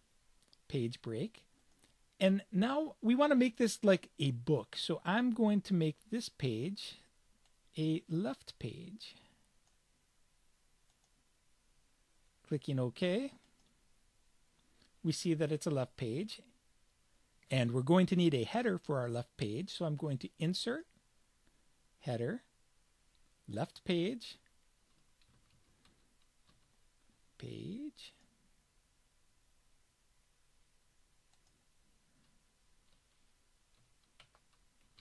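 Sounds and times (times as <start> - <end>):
faint mouse clicks: 10.9 - 11.2, 31.0 - 31.6.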